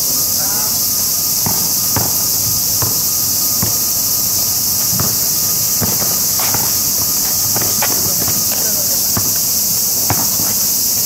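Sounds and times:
high-pitched insects droning: 0.0 - 11.0
basketball bouncing on asphalt: 0.8 - 11.0.

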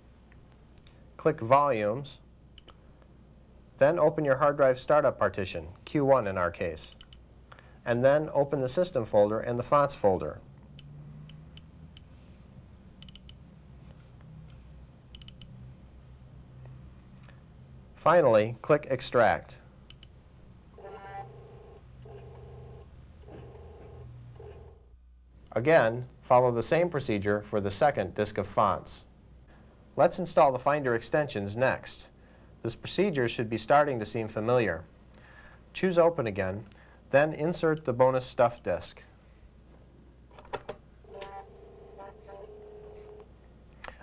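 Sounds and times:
disk drive spinning hum: 6.5 - 25.0, 41.0 - 44.0
floppy drive buzzing: 19.6 - 24.9, 41.0 - 44.0.

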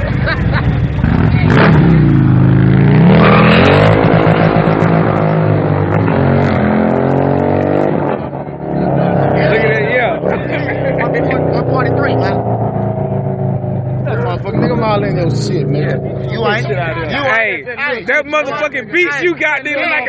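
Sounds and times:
motorcycle revving and accelerating: 0.0 - 17.0.

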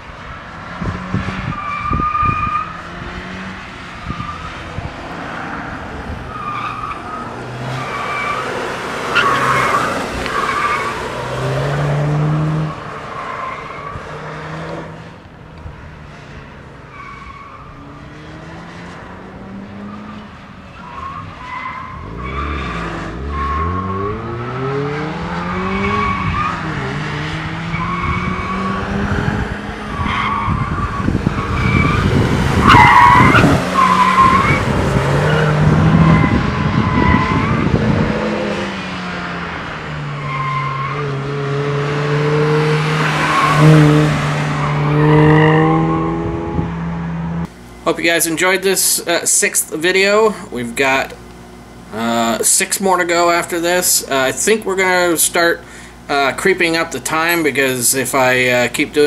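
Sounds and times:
car engine revving: 0.0 - 50.0
tyres squealing: 6.3 - 14.0, 29.9 - 37.6.

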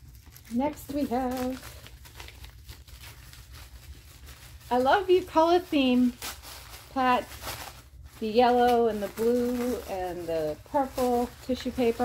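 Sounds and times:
tissue paper crackling: 0.0 - 12.0.

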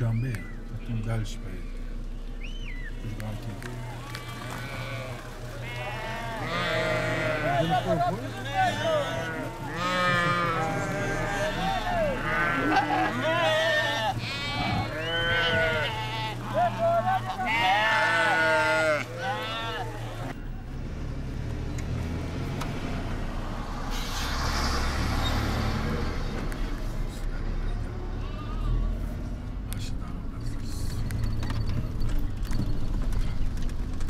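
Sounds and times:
sheep bleating: 3.7 - 20.4, 28.1 - 29.0.

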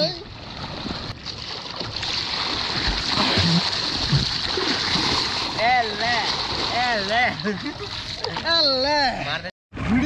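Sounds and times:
water splashing and churning: 0.0 - 8.8
paddle thrashing water: 0.4 - 8.4.

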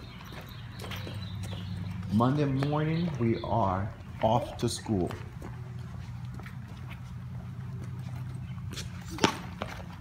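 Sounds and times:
toddler footsteps on brick: 0.0 - 10.0.

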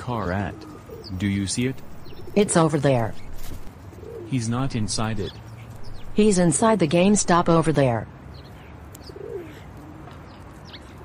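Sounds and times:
low dove coo: 0.2 - 1.2, 3.9 - 4.3, 9.0 - 11.0.

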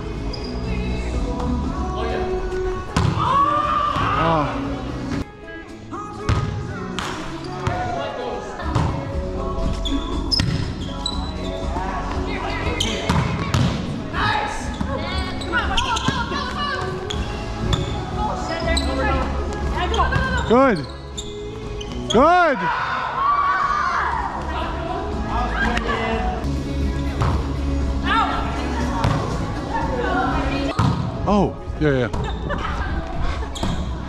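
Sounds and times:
players' voices: 0.0 - 34.0.

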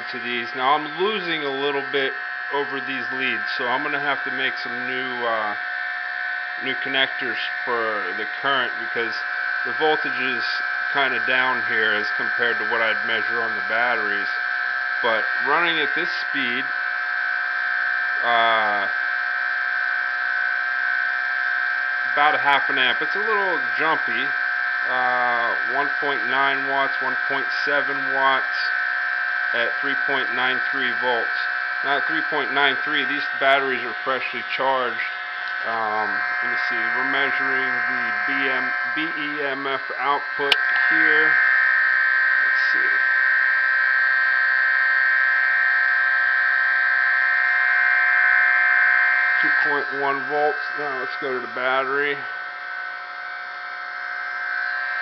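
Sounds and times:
electric motor high-pitched whine: 0.0 - 55.0.

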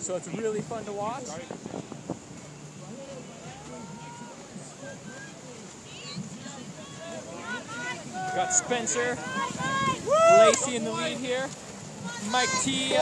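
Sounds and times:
river water rushing: 0.0 - 13.0
people calling out: 3.4 - 10.7, 12.0 - 13.0.

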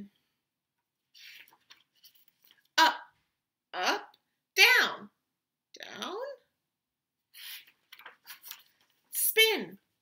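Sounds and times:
book page turning: 1.2 - 2.7, 7.4 - 9.1.

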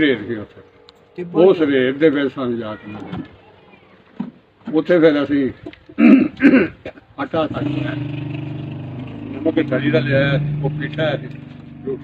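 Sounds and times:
vehicle engine running: 7.5 - 12.0
man talking: 9.4 - 12.0.

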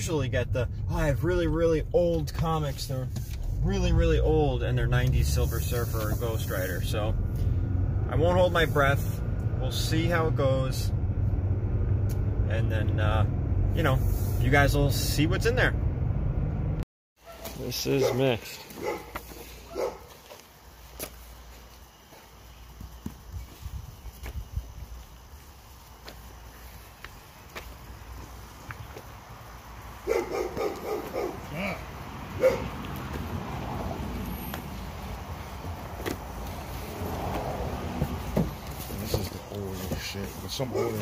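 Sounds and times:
dog barking: 17.2 - 20.1, 30.0 - 31.6, 32.4 - 32.8, 40.7 - 41.0.

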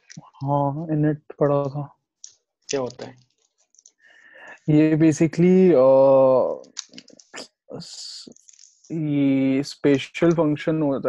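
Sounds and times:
person's drawn-out hesitation sound: 4.4 - 11.0.

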